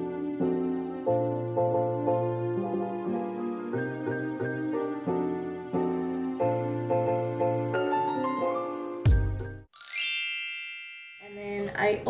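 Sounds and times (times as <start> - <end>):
background music: 0.0 - 10.5
sparkling chime: 9.8 - 11.6.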